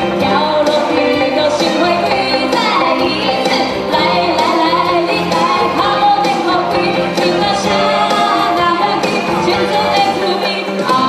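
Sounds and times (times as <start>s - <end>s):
amplified backing music: 0.0s - 11.0s
woman singing into a microphone: 0.0s - 11.0s.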